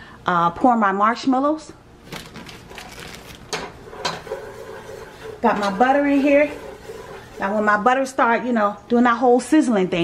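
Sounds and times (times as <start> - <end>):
plastic bag rustling: 2.0 - 3.6
butter crackling in pot: 2.0 - 7.9.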